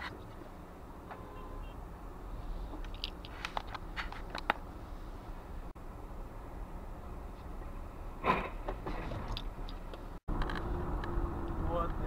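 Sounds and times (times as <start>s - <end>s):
car rumbling: 0.0s - 12.0s.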